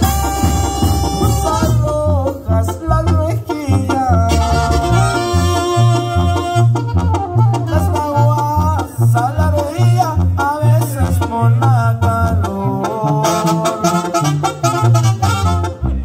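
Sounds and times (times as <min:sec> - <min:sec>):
bouncing bass line: 0:00.0 - 0:16.0
horn and keyboard melody: 0:00.0 - 0:16.0
live band playing upbeat music: 0:00.0 - 0:16.0.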